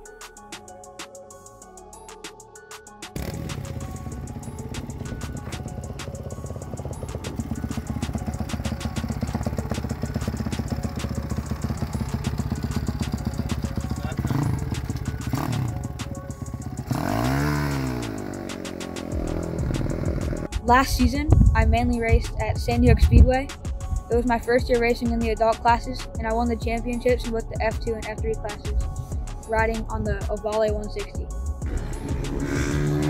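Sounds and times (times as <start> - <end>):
minibike engine idling and revving: 3.2 - 20.6, 31.6 - 33.0.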